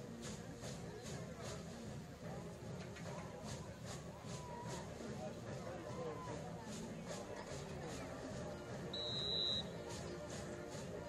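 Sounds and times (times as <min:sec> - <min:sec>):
background music: 0:00.0 - 0:11.0
crowd noise: 0:00.0 - 0:11.0
referee's whistle blast: 0:09.0 - 0:09.7.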